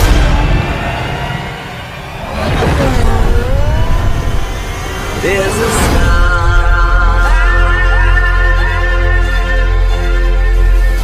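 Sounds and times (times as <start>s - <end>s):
low rumble: 0.0s - 8.8s.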